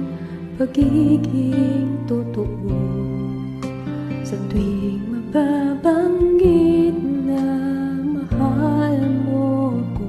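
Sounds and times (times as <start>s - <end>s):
woman singing a slow ballad: 0.0s - 10.0s.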